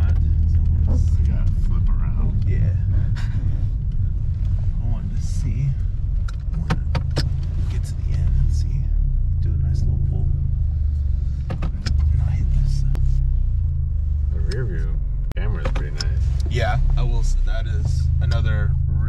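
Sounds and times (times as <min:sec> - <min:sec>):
car road and engine noise: 0:00.0 - 0:19.0.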